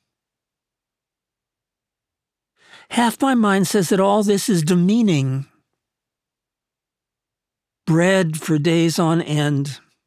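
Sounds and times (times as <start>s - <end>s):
man breathing in: 2.6s - 2.9s
man reading aloud: 2.7s - 5.6s, 7.8s - 10.0s.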